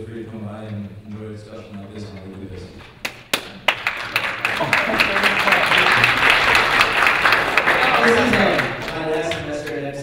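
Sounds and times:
audience applause: 0:03.0 - 0:09.6.

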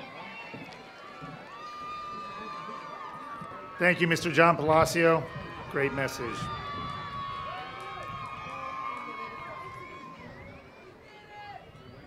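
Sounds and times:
crowd chattering and calling out: 0:00.0 - 0:12.0.

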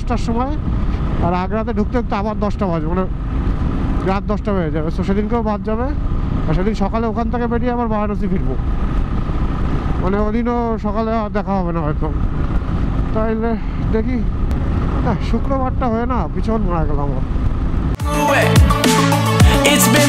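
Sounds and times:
motorcycle engine cruising: 0:00.0 - 0:18.0
wind rumble: 0:00.0 - 0:18.0
man talking: 0:01.2 - 0:03.1, 0:04.0 - 0:08.6, 0:10.0 - 0:12.2, 0:13.1 - 0:14.3, 0:15.0 - 0:17.3.

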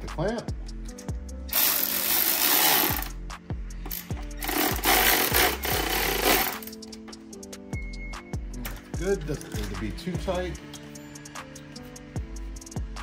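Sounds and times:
background music with steady beat: 0:00.0 - 0:13.0
cordless power driver: 0:01.5 - 0:03.1, 0:03.9 - 0:06.7.

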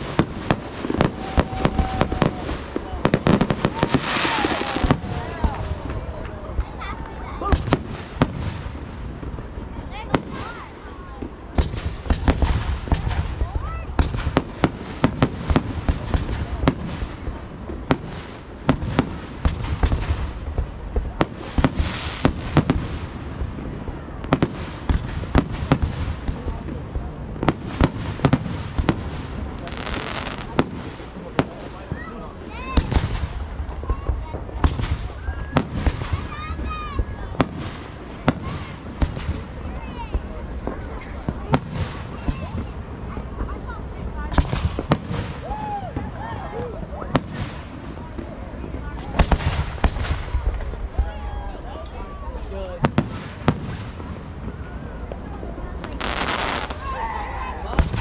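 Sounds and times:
fireworks bangs: 0:00.0 - 0:58.0
fireworks hissing and crackling: 0:00.0 - 0:58.0.

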